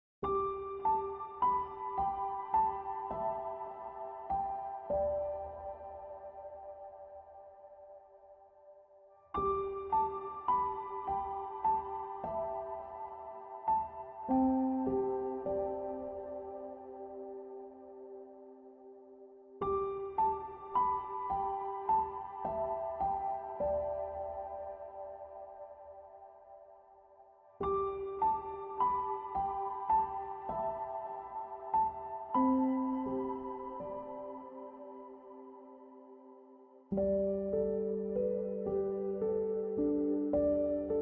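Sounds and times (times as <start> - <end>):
soft piano chord: 0.2 - 41.0.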